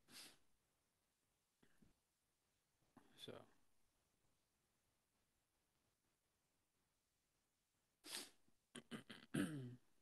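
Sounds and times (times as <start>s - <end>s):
person clearing throat: 8.7s - 10.0s.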